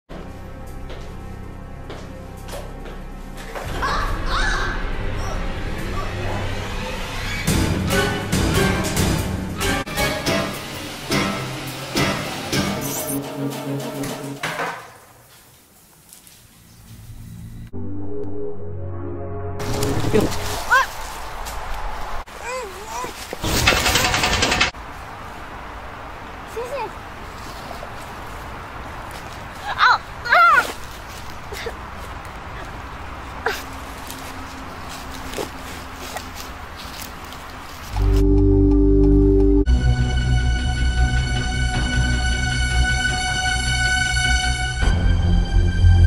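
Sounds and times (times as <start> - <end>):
rustling in dry leaves: 14.9 - 17.4, 19.6 - 23.5, 24.8 - 38.2.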